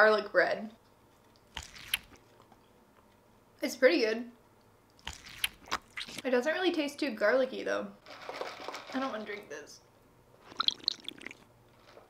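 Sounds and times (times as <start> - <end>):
slurping through a straw: 10.4 - 11.4.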